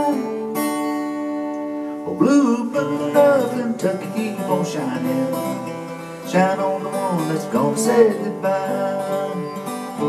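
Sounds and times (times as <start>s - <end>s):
man singing: 0.0s - 0.7s, 2.0s - 10.0s
acoustic guitar strumming: 0.0s - 10.0s.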